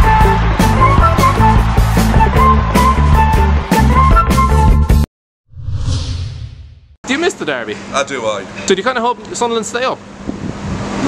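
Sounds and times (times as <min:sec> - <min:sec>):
low rumble: 0:05.5 - 0:07.0
whoosh sound effect: 0:05.5 - 0:07.0.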